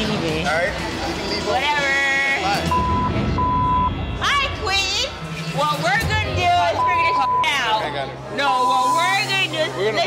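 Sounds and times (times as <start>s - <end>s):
censor bleeps: 2.7s - 4.0s, 6.7s - 7.8s.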